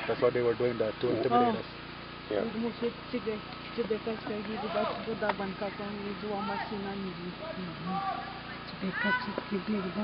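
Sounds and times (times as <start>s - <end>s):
woman talking: 1.3s - 1.6s, 2.4s - 8.0s, 8.6s - 10.0s.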